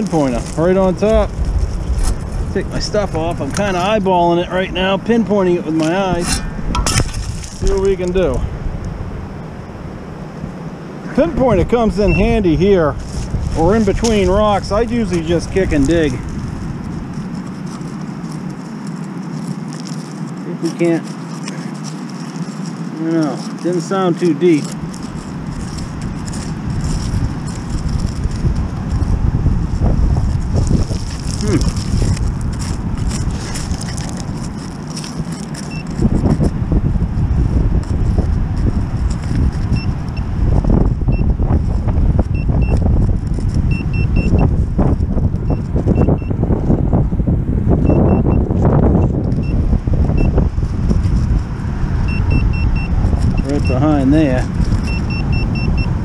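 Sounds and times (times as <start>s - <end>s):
stones and sand scraped: 0.0s - 8.4s, 11.1s - 46.3s, 48.6s - 55.4s
low rumble: 0.0s - 18.7s, 24.8s - 56.0s
pinpointer high beeps: 12.0s - 12.3s, 42.3s - 42.8s, 43.7s - 44.5s, 45.4s - 46.4s, 47.8s - 48.4s, 52.0s - 53.8s, 54.8s - 55.9s.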